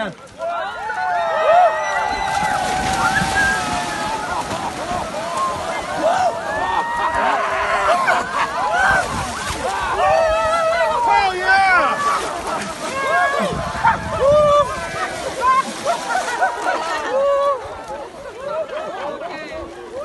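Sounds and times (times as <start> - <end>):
people splashing through water: 0.0 - 20.0
voices yelling and shrieking: 0.4 - 18.8.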